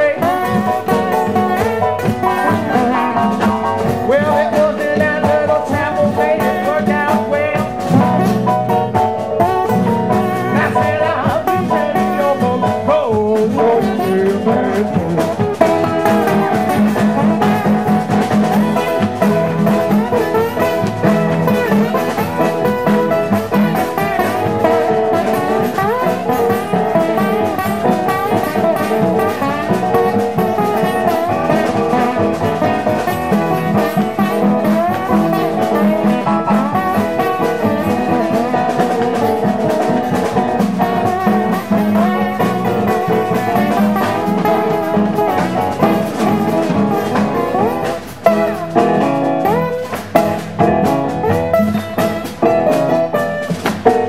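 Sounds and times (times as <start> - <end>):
acoustic blues band playing: 0.0 - 54.0.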